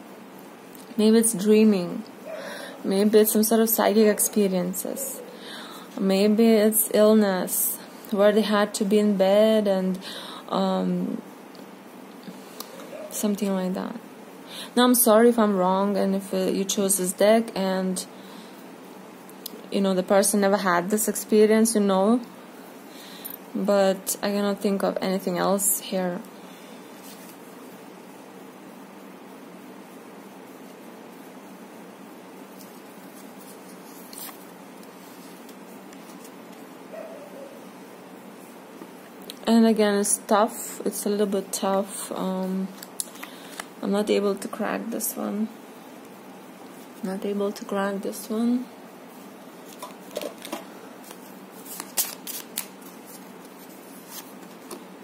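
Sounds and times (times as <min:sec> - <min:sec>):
steady background hiss: 0:00.0 - 0:55.0
cards moved over cloth: 0:32.5 - 0:36.7, 0:49.6 - 0:54.9
cards snapping and flicking: 0:51.7 - 0:52.8.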